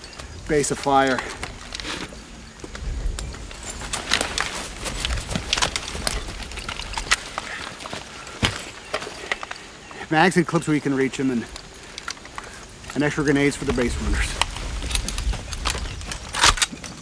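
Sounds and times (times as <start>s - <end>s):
buckles and clips clicking: 0.0s - 17.0s
canvas and webbing rustling: 0.0s - 17.0s.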